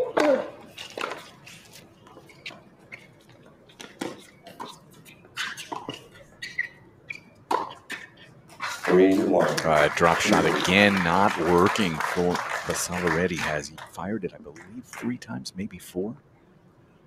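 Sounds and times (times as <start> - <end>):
racket striking tennis ball: 7.5 - 9.7.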